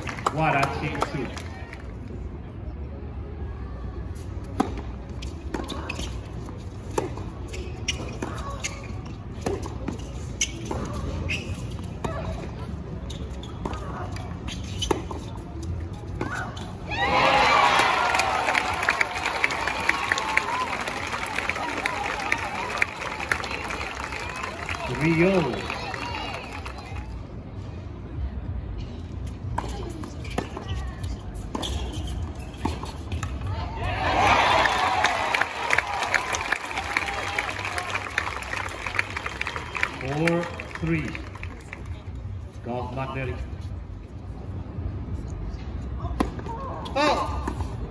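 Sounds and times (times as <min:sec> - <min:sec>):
crowd cheering and clapping: 0:16.9 - 0:27.1, 0:33.9 - 0:41.7.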